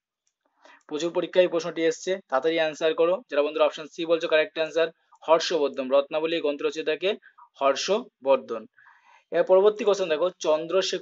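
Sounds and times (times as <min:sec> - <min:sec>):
person speaking: 0:00.8 - 0:08.7, 0:09.3 - 0:11.0.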